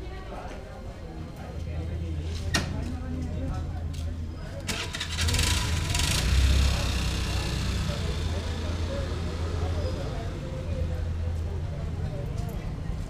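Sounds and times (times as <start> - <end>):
people talking: 0.0 - 13.0
vehicle engine starting and running: 4.6 - 11.3.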